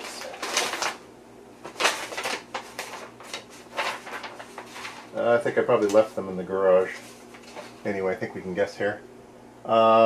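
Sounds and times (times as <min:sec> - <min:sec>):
papers rustling and handling: 0:00.0 - 0:01.0, 0:01.6 - 0:08.0.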